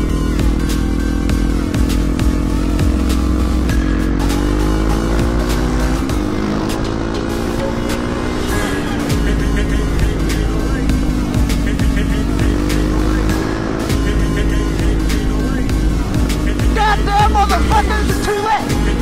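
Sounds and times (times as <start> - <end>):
motorcycle engine running: 0.0 - 19.0
music with steady beat: 0.0 - 19.0.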